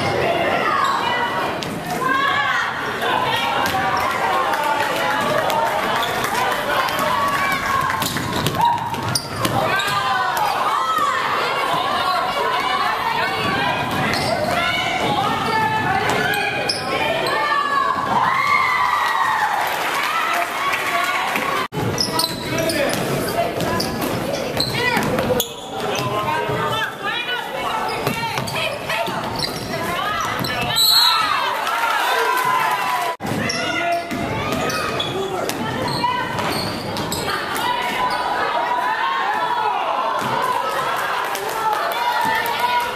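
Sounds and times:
spectators shouting in a gym: 0.0 - 42.9
sneakers squeaking on court: 5.8 - 12.7, 13.4 - 18.1, 21.8 - 26.9, 27.5 - 31.5, 33.2 - 38.4.

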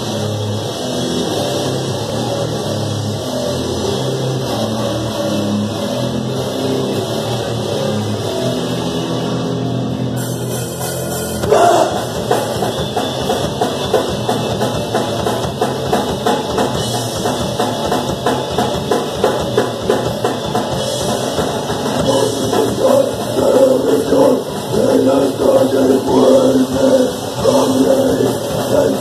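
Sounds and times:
electric guitar and bass: 0.0 - 29.0
punk band playing live: 0.0 - 29.0
fast drum-kit beat: 10.2 - 29.0.

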